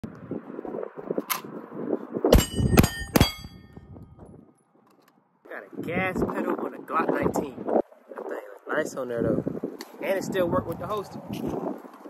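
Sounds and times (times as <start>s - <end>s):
metallic ding of steel target: 2.3s - 3.8s.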